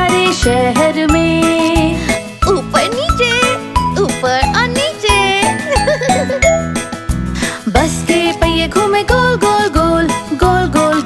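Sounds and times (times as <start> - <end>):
instrumental children's song music: 0.0 - 11.0.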